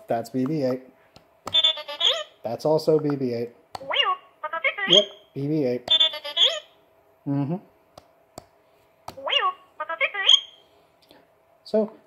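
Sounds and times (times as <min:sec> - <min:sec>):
droid beeps and electronic chirps: 0:10.2 - 0:10.6.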